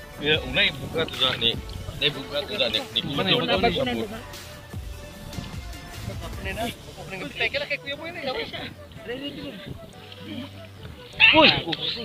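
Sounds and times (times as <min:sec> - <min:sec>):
water splashing: 0:00.0 - 0:12.0
low talk: 0:00.1 - 0:12.0.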